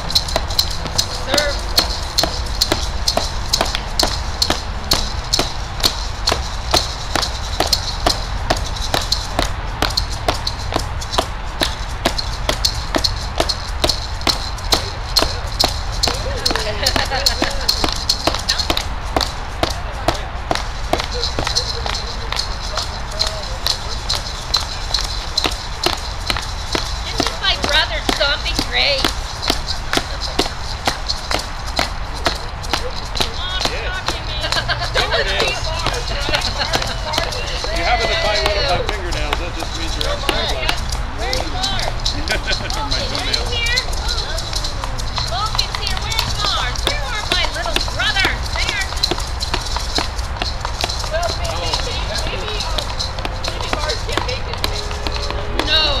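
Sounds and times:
faint voices: 0.0 - 56.0
hand drums beating fast: 0.0 - 56.0.

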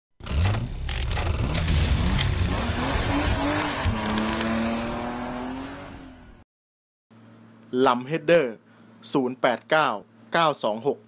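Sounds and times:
car engine revving: 0.2 - 6.4.

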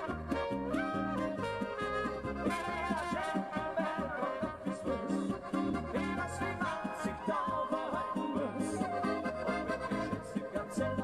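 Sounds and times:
folk band playing: 0.0 - 11.0.

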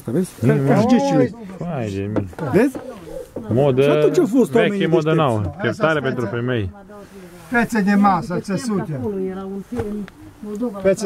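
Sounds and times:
man talking: 0.0 - 6.7, 7.5 - 9.0.

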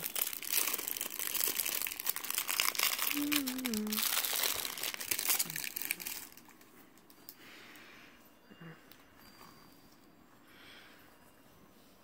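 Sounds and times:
crinkling and rustling: 0.0 - 7.8.

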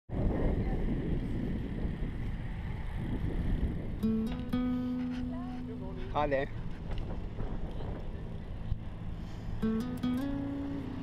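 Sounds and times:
wind buffeting microphone: 0.1 - 11.0.

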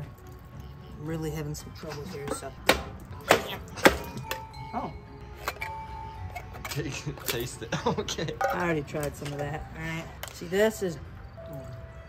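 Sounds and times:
metal can knocking: 2.2 - 4.4.

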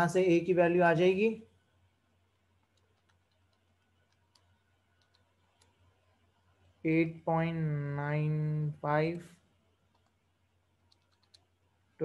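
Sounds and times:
faint clicks: 2.3 - 5.9, 9.9 - 10.2, 10.8 - 11.5.

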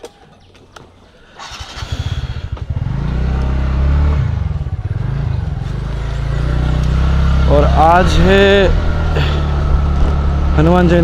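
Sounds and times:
motor scooter engine: 1.4 - 11.0.

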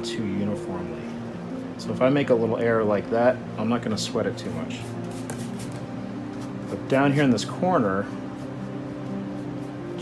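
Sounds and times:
soft music of held notes: 0.0 - 10.0.

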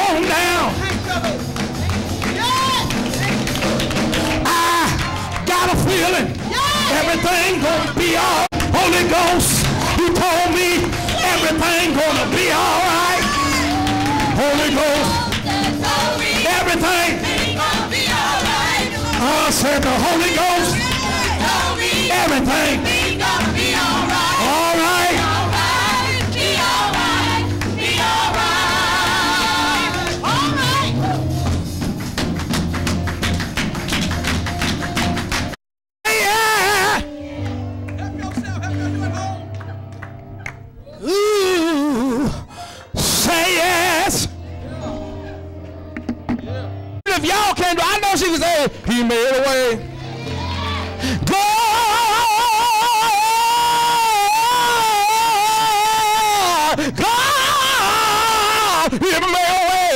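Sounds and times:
gospel choir singing: 4.1 - 31.3, 36.2 - 39.4, 43.0 - 46.5, 49.5 - 59.9.

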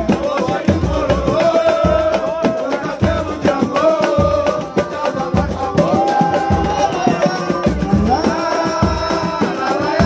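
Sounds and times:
low drum beat: 0.0 - 10.0
voices singing long note: 0.0 - 10.0.

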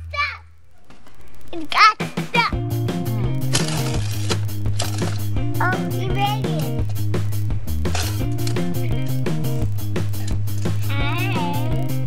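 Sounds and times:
background music with bass line: 2.0 - 12.0.

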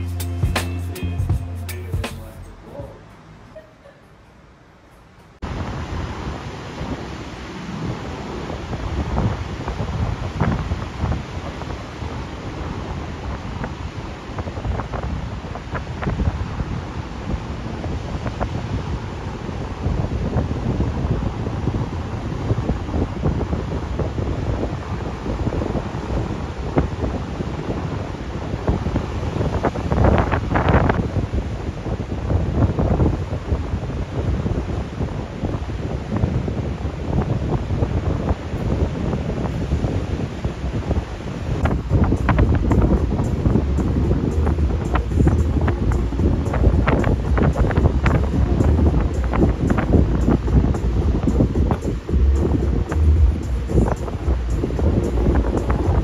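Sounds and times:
wind gusting on microphone: 5.2 - 56.0.

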